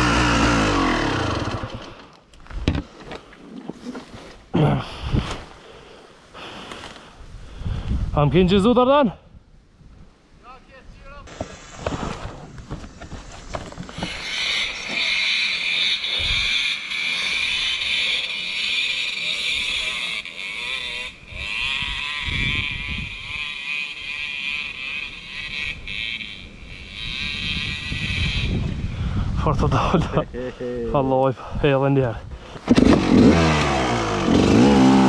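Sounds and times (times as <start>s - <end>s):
dirt bike engine revving: 0.0s - 2.1s, 13.8s - 29.0s, 32.6s - 35.0s.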